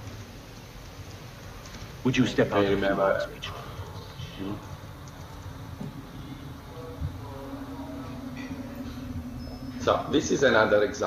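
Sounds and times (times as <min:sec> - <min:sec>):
low hum: 0:03.1 - 0:11.0.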